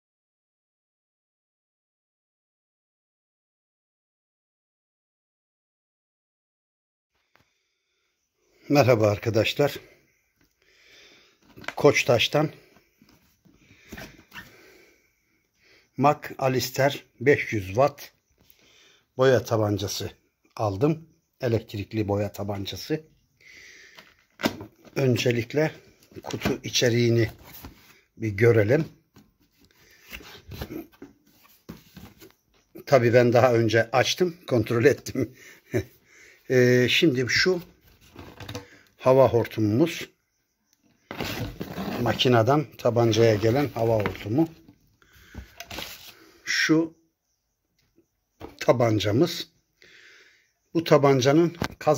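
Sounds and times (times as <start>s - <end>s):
plastic hose rustling and rubbing: 37.7s - 38.7s, 41.1s - 44.5s, 45.5s - 46.2s.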